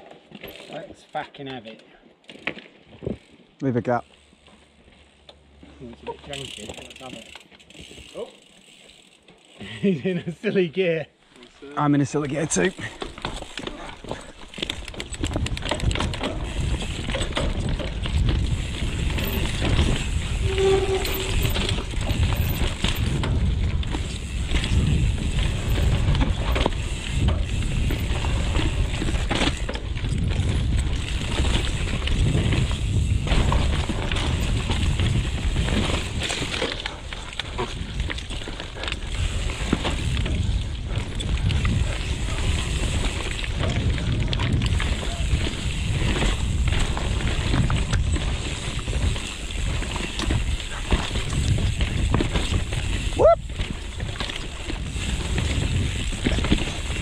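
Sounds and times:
bike clicks and rattles: 0:00.0 - 0:10.6, 0:11.4 - 0:57.0
tyres rumbling over dirt: 0:12.4 - 0:57.0.

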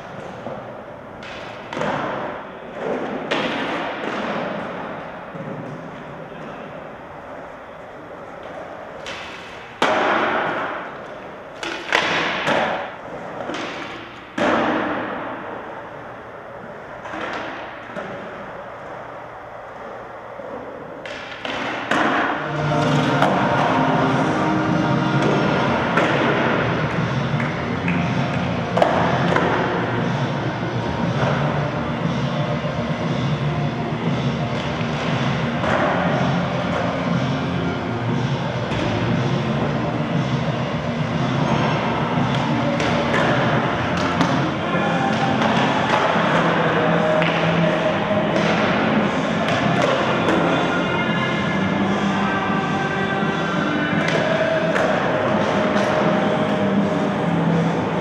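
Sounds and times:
skateboard clack: 0:00.0 - 0:15.6, 0:16.6 - 0:18.9, 0:19.7 - 0:24.2, 0:25.1 - 0:30.1, 0:34.5 - 0:37.7, 0:41.5 - 0:51.6
skateboard wheels rolling: 0:00.0 - 0:58.0.

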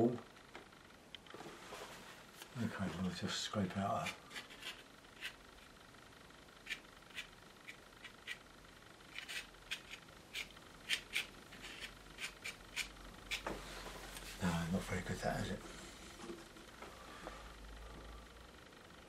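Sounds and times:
painting knife scraping paint: 0:03.8 - 0:05.4, 0:06.6 - 0:08.4, 0:09.1 - 0:13.4.

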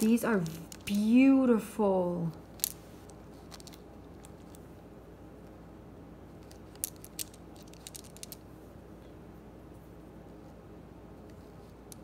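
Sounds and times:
stones clicking together: 0:02.5 - 0:04.6, 0:06.4 - 0:08.4.

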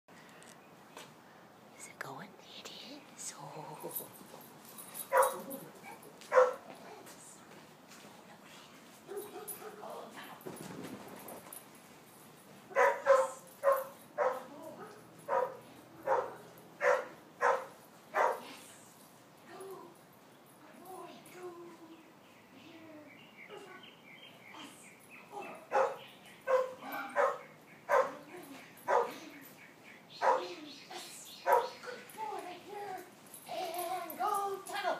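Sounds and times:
small dog barking: 0:05.1 - 0:06.6, 0:12.7 - 0:18.5, 0:25.4 - 0:28.2, 0:28.9 - 0:29.2, 0:30.2 - 0:30.6.

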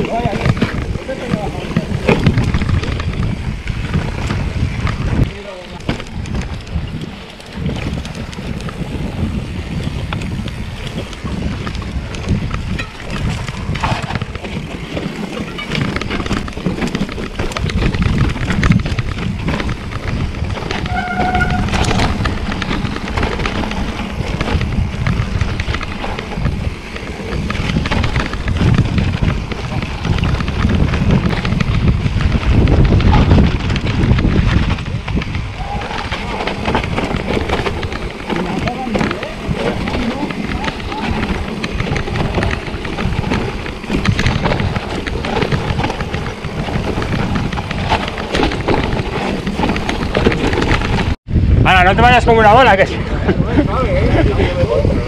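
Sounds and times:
bike clattering over bumps: 0:00.0 - 0:51.2
tyres on dirt: 0:00.0 - 0:51.2
wind on microphone: 0:00.0 - 0:55.0.

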